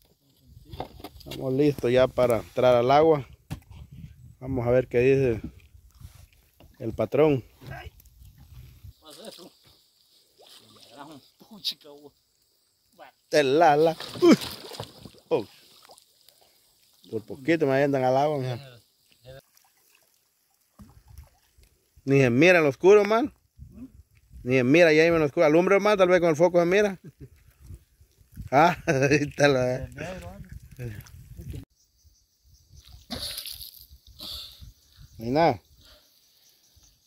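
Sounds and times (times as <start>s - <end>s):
soft water splashes: 8.0s - 11.7s, 13.8s - 17.5s, 18.6s - 22.0s, 29.4s - 31.6s
water trickling and dripping: 14.0s - 22.1s
man laughing: 28.7s - 29.2s.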